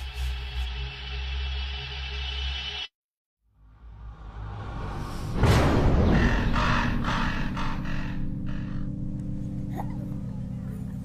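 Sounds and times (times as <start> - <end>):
loud orchestral hit: 4.9 - 7.9.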